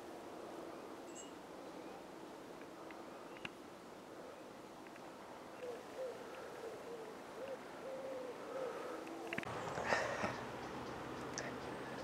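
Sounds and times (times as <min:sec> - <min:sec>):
bird hooting coos: 0:05.5 - 0:12.0.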